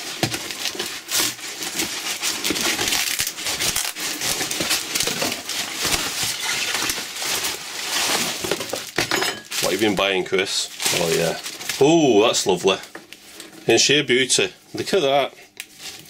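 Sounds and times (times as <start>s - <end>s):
packing tape ripping: 0.0s - 12.8s
cardboard scraping and crinkling: 0.0s - 13.8s, 14.8s - 16.0s.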